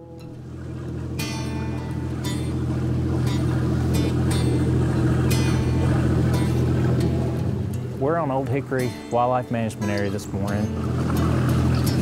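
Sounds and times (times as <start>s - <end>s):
boat motor droning: 0.0s - 12.0s
plucked guitar music: 0.0s - 12.0s.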